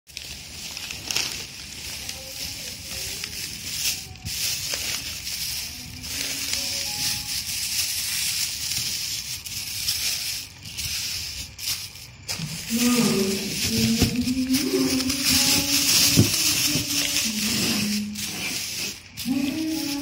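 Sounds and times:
plastic bags rustling: 0.1s - 20.0s.

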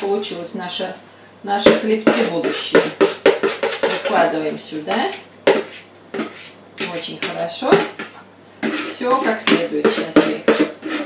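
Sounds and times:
spoon knocking plastic bowl: 1.6s - 4.2s, 4.9s - 8.8s
dough scraped from bowl: 2.1s - 4.3s, 5.5s - 7.1s, 8.6s - 11.0s.

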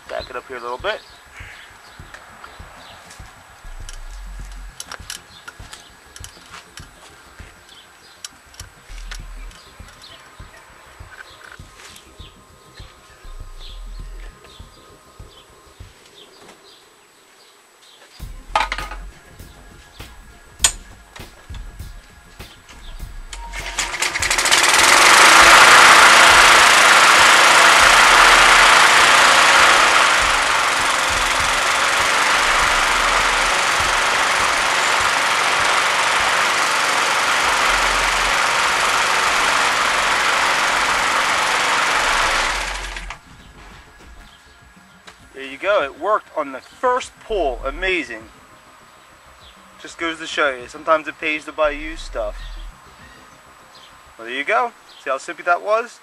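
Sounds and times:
mower engine running: 0.0s - 16.0s, 18.2s - 44.4s, 51.4s - 52.8s
mower engine pull-started: 23.3s - 43.8s.

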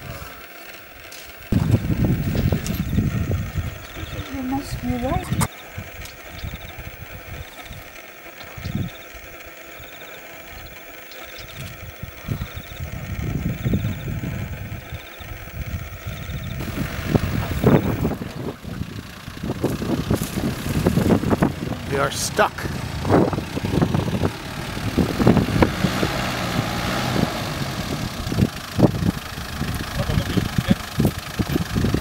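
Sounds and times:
vehicle engine running: 0.0s - 32.0s.

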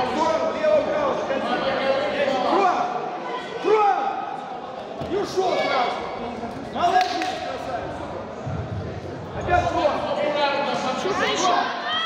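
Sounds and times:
voices in an echoing hall: 0.0s - 12.0s.

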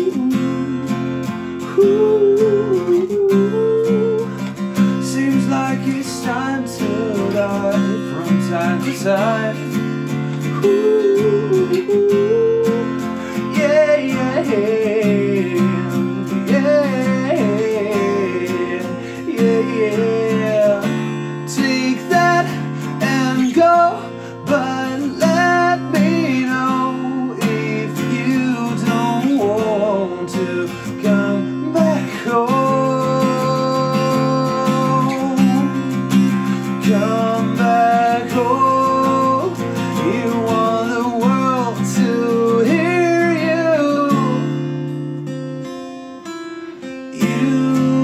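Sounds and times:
man singing: 0.0s - 44.8s, 46.8s - 48.0s
acoustic guitar strumming: 0.0s - 48.0s.

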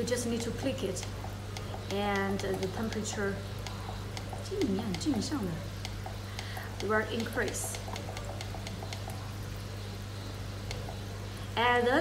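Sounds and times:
aquarium water trickling: 0.0s - 12.0s
constant low hum: 0.0s - 12.0s.

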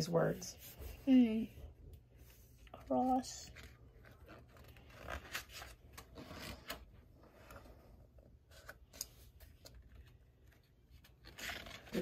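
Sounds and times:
paper pages turning: 2.6s - 12.0s.

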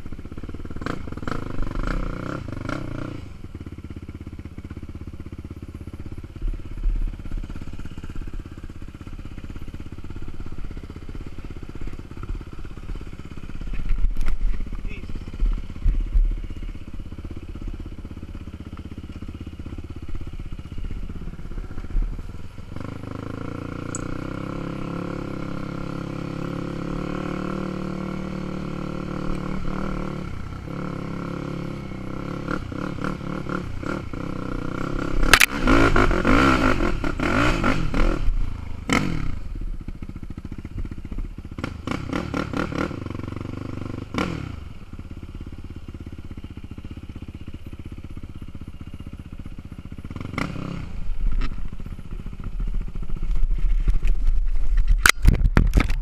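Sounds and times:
quad engine revving: 0.0s - 6.4s, 7.2s - 47.0s, 48.9s - 53.2s
knocks and clatter over bumps: 13.5s - 16.4s, 53.0s - 56.0s.

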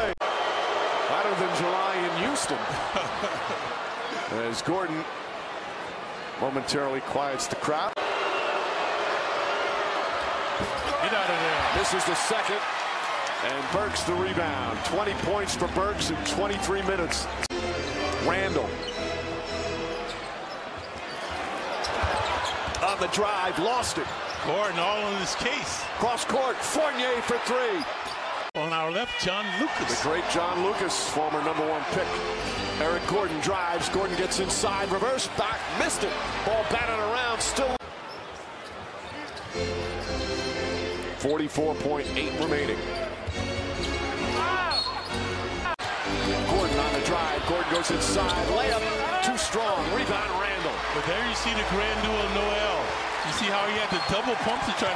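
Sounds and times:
crowd noise: 0.0s - 54.9s
held arena music tones: 13.6s - 20.3s, 39.5s - 54.9s
sneaker squeaks: 18.8s - 23.0s, 24.0s - 24.5s, 37.9s - 40.2s, 43.0s - 45.3s.

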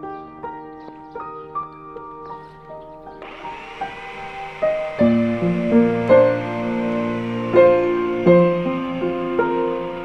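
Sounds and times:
soft piano music: 0.0s - 3.6s, 4.2s - 10.0s
belt sander motor running: 3.2s - 10.0s.

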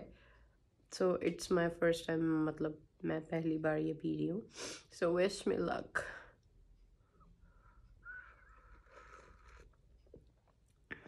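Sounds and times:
slurp of hot drink: 8.6s - 10.0s.

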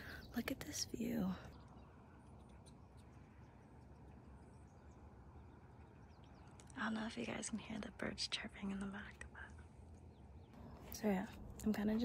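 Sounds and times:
distant songbirds chirping: 0.0s - 12.0s
low background hum: 0.0s - 12.0s.

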